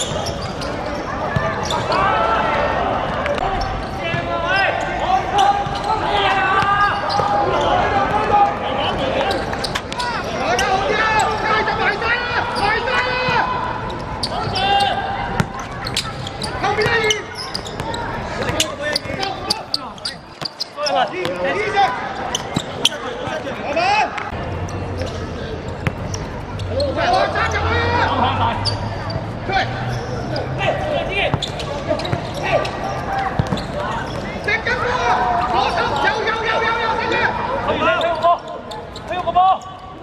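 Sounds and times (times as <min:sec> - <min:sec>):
footballers shouting: 0:00.1 - 0:24.4, 0:26.5 - 0:40.0.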